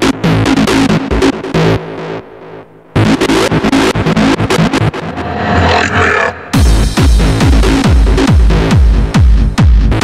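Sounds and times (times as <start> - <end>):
hardstyle electronic dance music: 0.0 - 10.0
rapid synth stabs: 0.1 - 10.0
rising synth sweep: 4.0 - 7.4.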